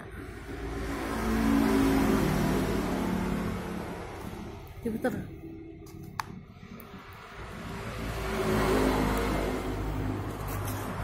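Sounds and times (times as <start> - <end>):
vehicle engine passing by: 0.0 - 4.8, 6.4 - 11.0.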